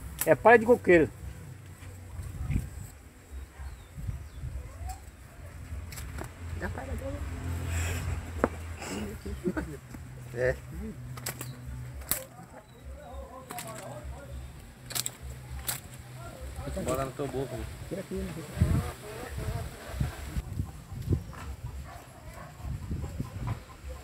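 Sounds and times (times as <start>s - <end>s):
palm leaf rustling and crackling: 0.0s - 22.6s.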